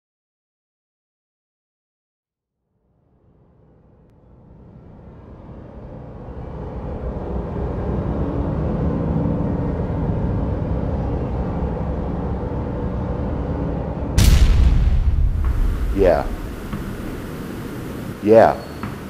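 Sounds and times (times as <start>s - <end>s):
low steady rumbling ambience: 4.2s - 18.6s.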